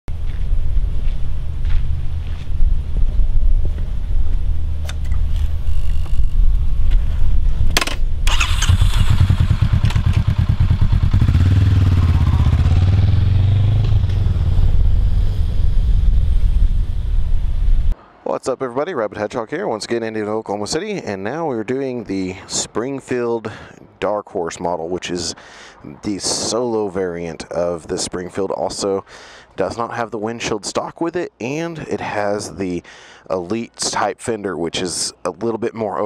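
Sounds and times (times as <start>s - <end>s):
sharp click: 4.8s - 6.2s
motorcycle engine revving: 8.2s - 18.0s.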